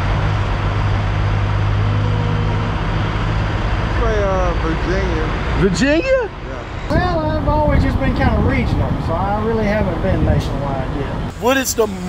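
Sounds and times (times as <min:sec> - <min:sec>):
diesel engine idling: 0:00.0 - 0:07.7
rushing noise: 0:00.0 - 0:12.0.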